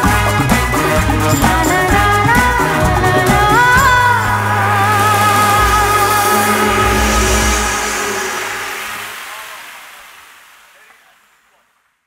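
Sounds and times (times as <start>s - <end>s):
brass band chord: 0.0s - 9.5s
hall reverberation: 1.2s - 10.0s.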